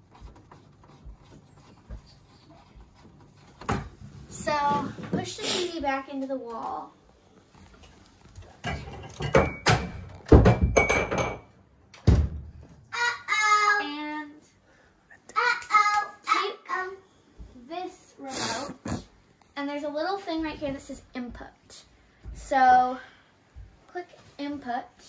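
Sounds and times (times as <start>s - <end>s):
knocks and thumps: 2.8s - 5.4s, 8.6s - 12.8s
child's voice: 4.3s - 7.0s, 12.9s - 14.6s, 15.2s - 23.2s, 23.9s - 25.0s.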